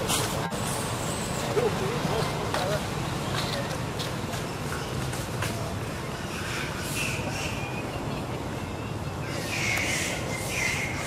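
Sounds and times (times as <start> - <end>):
road traffic rumble: 0.0 - 11.0
faint wavering calls: 8.8 - 11.0.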